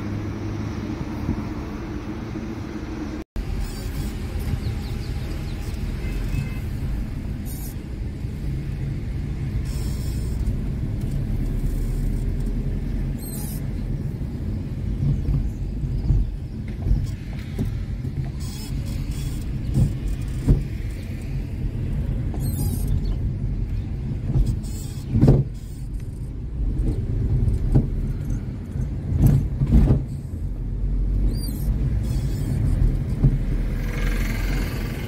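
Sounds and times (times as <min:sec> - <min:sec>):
car engine and road rumble: 0:00.0 - 0:35.0.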